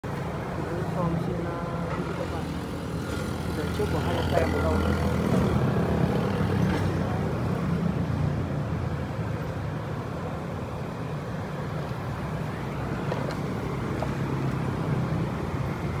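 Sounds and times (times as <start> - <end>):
road traffic engine rumble: 0.0 - 16.0.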